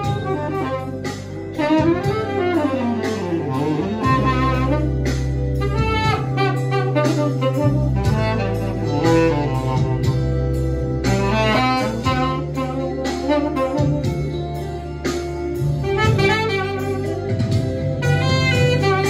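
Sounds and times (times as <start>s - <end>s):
backing track with low bass: 0.0s - 19.0s
tenor saxophone jazz melody: 0.0s - 19.0s.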